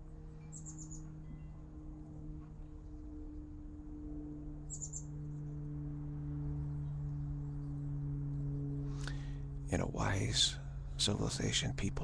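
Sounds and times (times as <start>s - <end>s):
steady low hum: 0.0s - 12.0s
high bird chirps: 0.5s - 1.1s, 4.7s - 5.1s.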